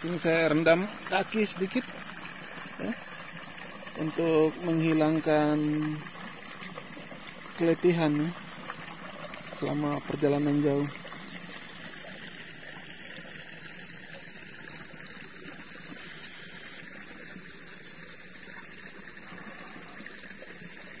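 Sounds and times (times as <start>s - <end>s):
water flowing and trickling: 0.0s - 21.0s.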